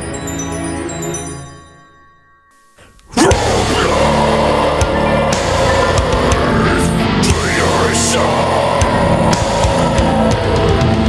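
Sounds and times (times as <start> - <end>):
distorted electric guitars: 3.0 - 11.0
fast dense drums: 3.3 - 11.0.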